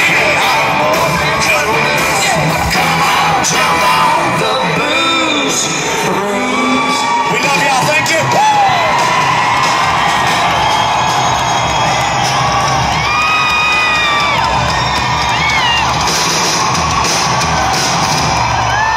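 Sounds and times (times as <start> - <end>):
live band playing: 0.0 - 18.9
crowd cheering and whooping: 0.1 - 18.9.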